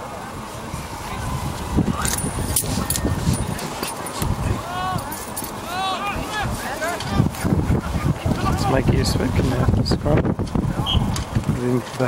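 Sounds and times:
wind rumbling on microphone: 0.0s - 5.1s, 6.0s - 12.0s.

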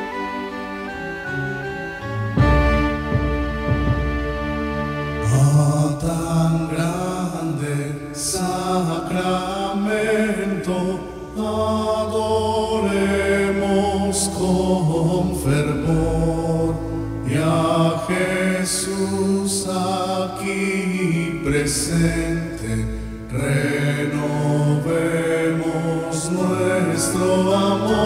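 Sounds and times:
instrumental accompaniment: 0.0s - 5.9s, 23.2s - 28.0s
person singing a slow hymn: 5.2s - 28.0s.

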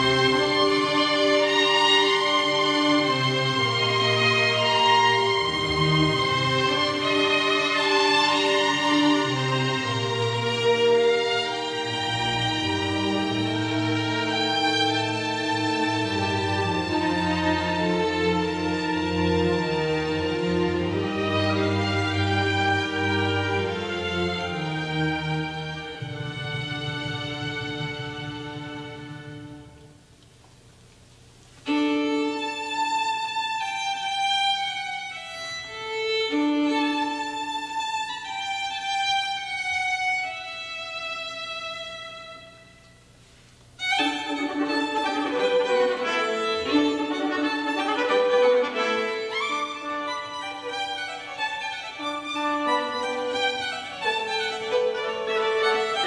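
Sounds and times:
solo violin playing: 0.0s - 30.0s, 31.6s - 43.0s, 43.8s - 56.0s.

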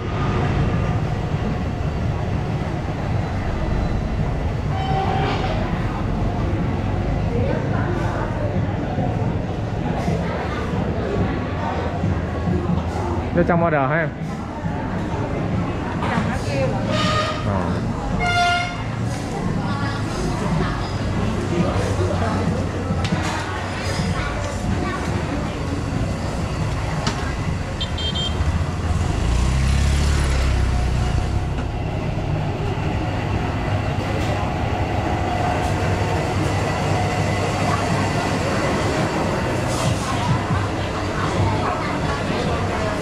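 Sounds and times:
background chatter: 0.0s - 43.0s
motorbike traffic: 0.0s - 43.0s
passing vehicle low rumble: 28.4s - 43.0s.

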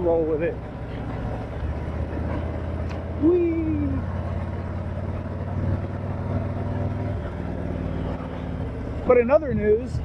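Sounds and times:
motorcycle engine running: 0.0s - 10.0s.

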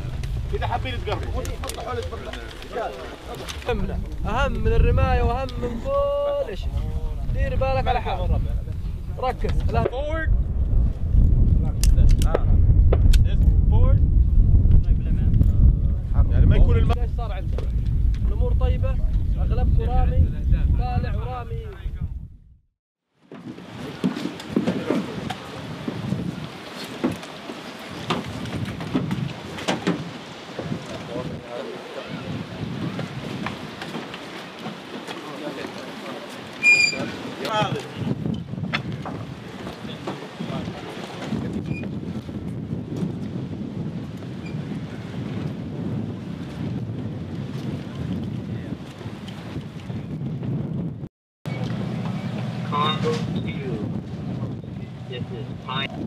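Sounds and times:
wind buffeting microphone: 0.0s - 22.6s, 23.4s - 56.0s
men talking: 0.4s - 10.4s, 11.5s - 12.6s, 13.2s - 14.0s, 14.8s - 22.2s, 30.7s - 32.6s, 34.9s - 38.3s, 39.4s - 41.7s, 52.6s - 56.0s.

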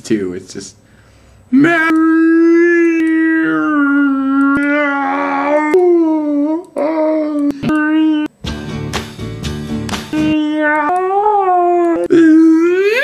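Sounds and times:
man howling: 1.5s - 8.3s, 10.1s - 13.0s.

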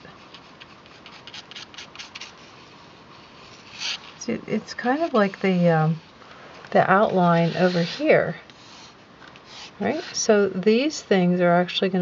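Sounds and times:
pencil scratching on paper: 0.2s - 2.6s, 3.4s - 4.2s, 6.9s - 10.4s.

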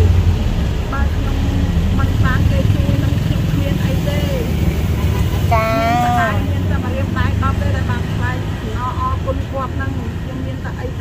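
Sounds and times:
woman talking: 0.0s - 4.7s, 5.4s - 11.0s
low background rumble: 0.0s - 11.0s.

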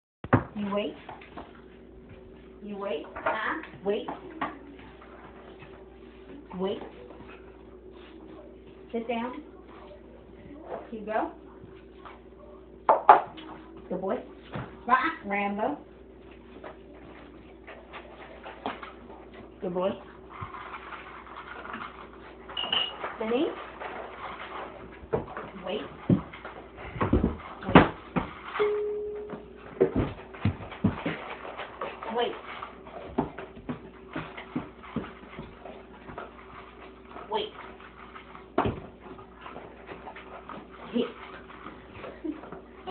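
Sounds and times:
paws clicking on tile floor: 0.6s - 12.4s, 15.8s - 42.9s
food bowl clattering on tile floor: 20.3s - 36.9s.

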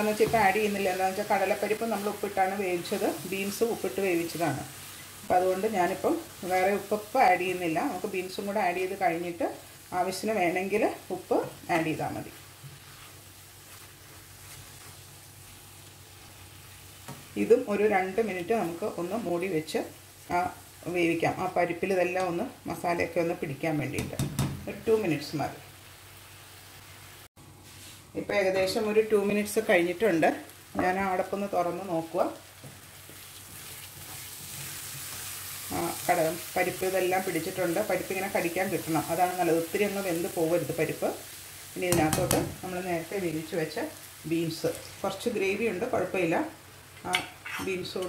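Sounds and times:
food sizzling in a pan: 0.0s - 48.0s
spatula stirring: 11.4s - 17.3s, 32.6s - 37.6s.

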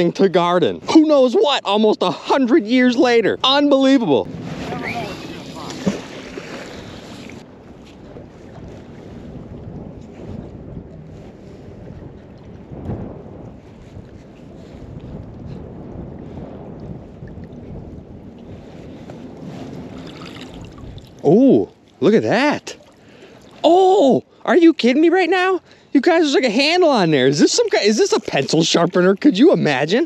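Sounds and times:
wind buffeting microphone: 0.0s - 30.0s
lapping water: 4.6s - 7.4s, 20.0s - 22.0s, 22.6s - 24.4s, 27.2s - 29.9s.

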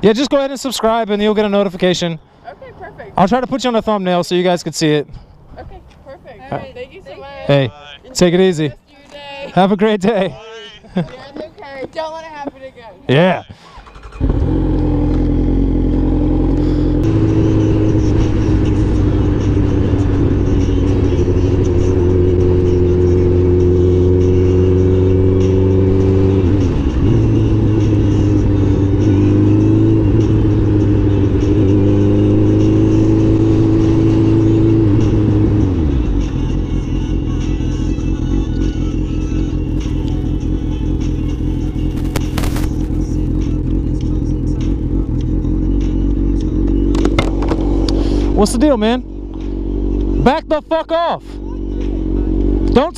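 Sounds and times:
motorcycle engine cruising: 13.6s - 52.9s.

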